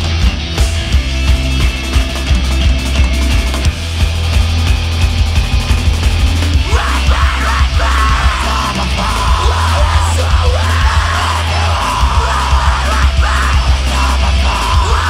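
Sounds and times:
bass: 0.0 - 15.0
drums: 0.0 - 15.0
electric guitar: 0.0 - 15.0
person singing: 6.6 - 15.0.

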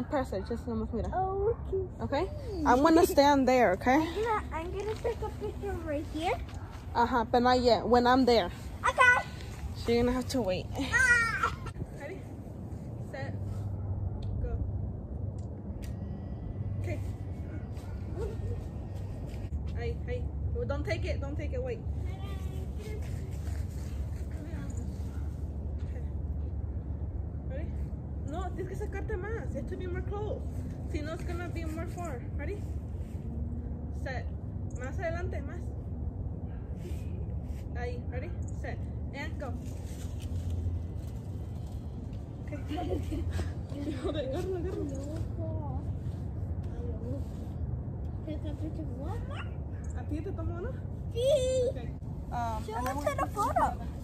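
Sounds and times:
low outdoor rumble: 0.0 - 54.0.

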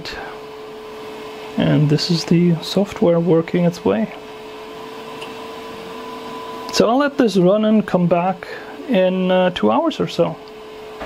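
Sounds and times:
resin printer humming with whine: 0.0 - 11.0.

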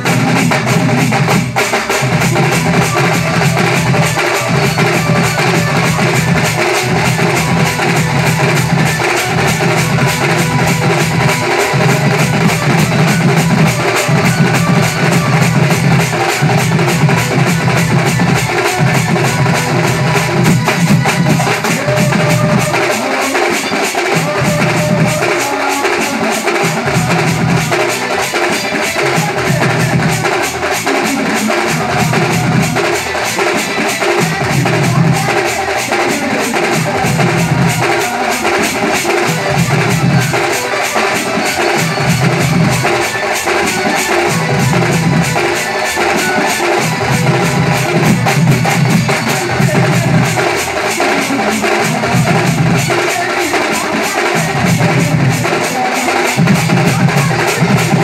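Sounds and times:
deep drum beat: 0.0 - 58.0
drum troupe playing: 0.0 - 58.0
loud music: 0.0 - 58.0.

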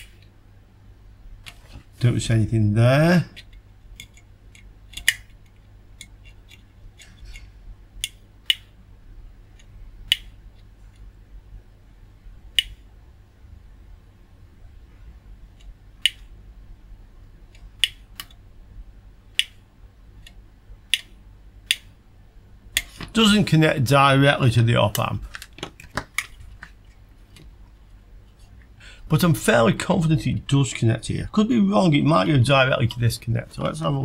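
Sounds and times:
faint low hum: 0.0 - 34.0
probe tips clicking on circuit board: 3.4 - 7.1, 8.0 - 8.8, 9.6 - 11.1, 12.5 - 12.8, 15.6 - 16.3, 17.5 - 18.4, 19.3 - 19.6, 20.2 - 22.0.

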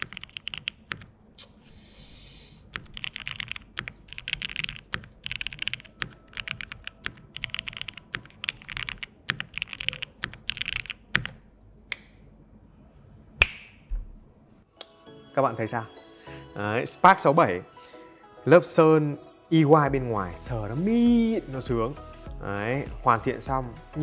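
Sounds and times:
fast typing on mechanical keyboard: 0.0 - 1.1, 2.7 - 11.4.

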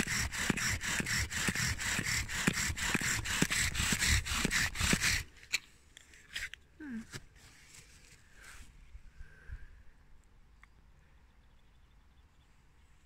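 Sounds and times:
bow drill spindle grinding wood: 0.0 - 5.3.

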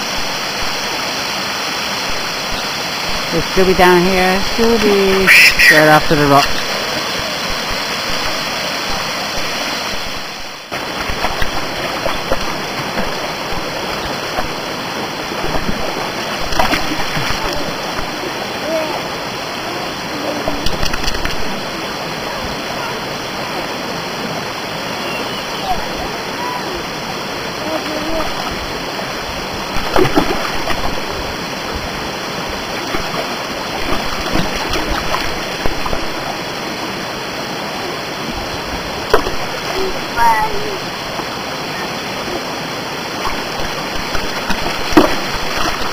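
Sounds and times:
mountain stream rushing: 0.0 - 45.9
stones splashing into water: 10.8 - 14.6, 15.4 - 18.2, 29.7 - 31.1, 32.8 - 36.3, 39.1 - 39.7, 43.2 - 45.9.

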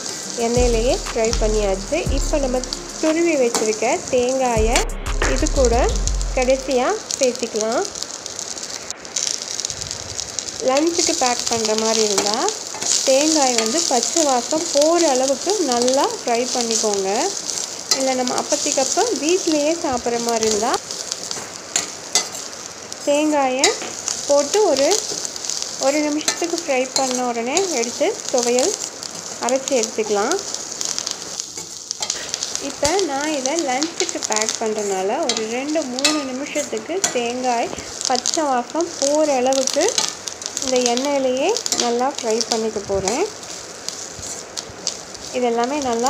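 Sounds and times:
food sizzling in oil: 0.0 - 46.0
woman talking: 0.3 - 7.9, 10.6 - 17.4, 18.0 - 20.8, 23.1 - 25.0, 25.8 - 28.8, 29.4 - 30.4, 32.6 - 40.0, 40.6 - 43.3, 45.3 - 46.0.

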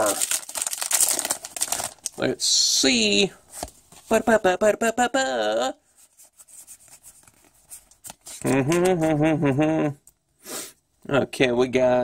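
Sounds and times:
trading cards rustling and clicking: 6.6 - 9.2.

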